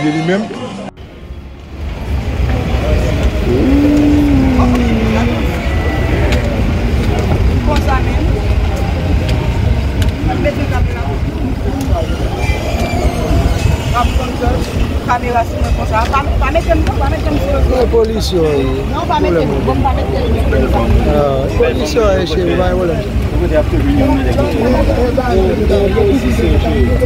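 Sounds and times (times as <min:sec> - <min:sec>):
steady low rumble: 0:01.0 - 0:12.0
faint voices speaking: 0:02.0 - 0:27.0.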